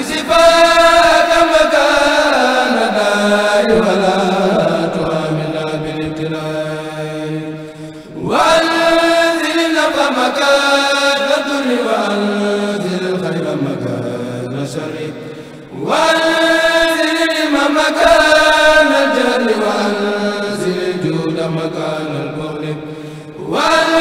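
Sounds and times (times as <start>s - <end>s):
men chanting through microphones: 0.0s - 24.0s.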